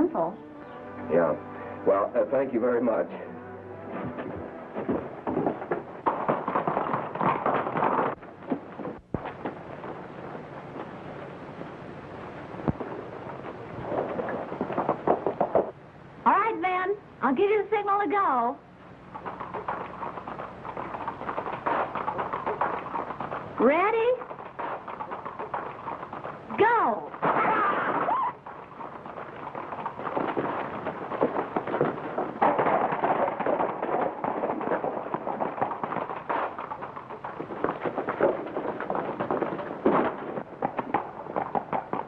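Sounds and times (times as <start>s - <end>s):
horses galloping hoofbeats: 3.8s - 15.8s, 17.4s - 42.0s.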